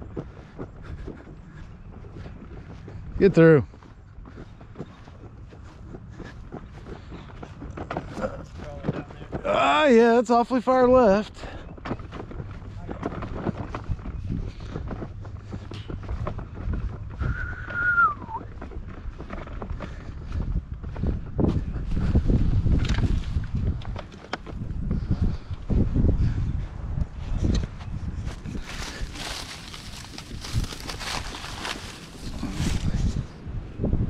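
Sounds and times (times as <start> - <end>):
rustling of clothing and dry grass: 0.0 - 34.0
wind rumbling on microphone: 11.4 - 34.0
footsteps on grass and dry leaves: 18.2 - 25.4, 27.3 - 33.4.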